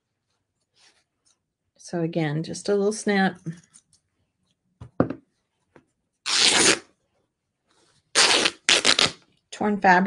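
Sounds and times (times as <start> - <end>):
fabric ripping: 6.2 - 6.9, 8.1 - 9.3.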